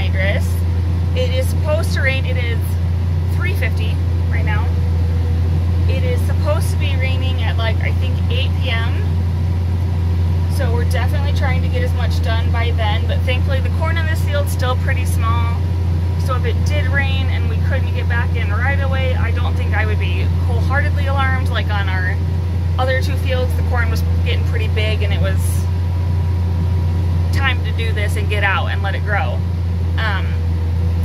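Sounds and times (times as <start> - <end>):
woman talking: 0.0 - 4.8, 5.9 - 9.1, 10.5 - 15.6, 16.2 - 22.2, 22.8 - 25.7, 27.3 - 29.4, 30.0 - 30.4
tractor engine droning: 0.0 - 31.0.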